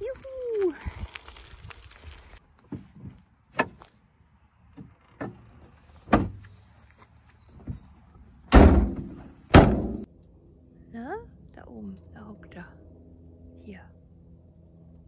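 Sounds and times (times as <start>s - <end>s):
van doors slamming shut: 6.1s - 6.4s, 8.5s - 10.1s.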